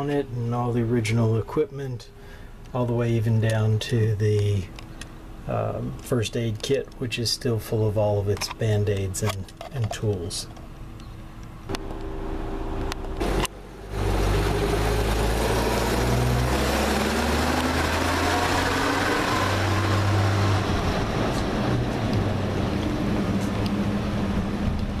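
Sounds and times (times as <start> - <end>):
bus engine pulling away: 11.7 - 25.0.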